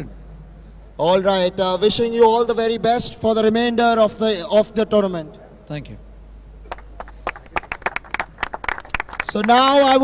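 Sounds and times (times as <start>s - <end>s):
people clapping: 6.7s - 10.0s.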